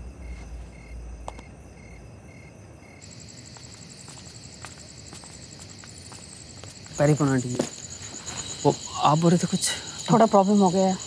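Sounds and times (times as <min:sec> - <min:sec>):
continuous cricket trill: 0:00.0 - 0:11.0
crickets chirping: 0:00.0 - 0:11.0.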